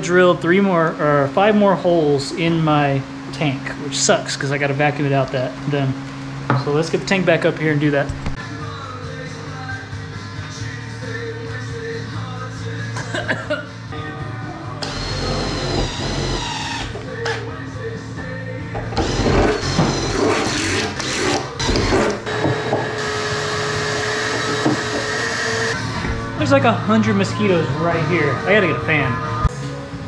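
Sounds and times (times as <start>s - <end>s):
background music: 8.4s - 30.0s
cordless drill boring steel: 14.8s - 17.0s, 19.0s - 25.8s.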